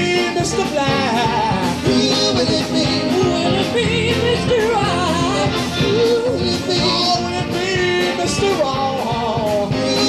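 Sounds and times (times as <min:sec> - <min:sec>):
soul blues band playing: 0:00.0 - 0:10.0.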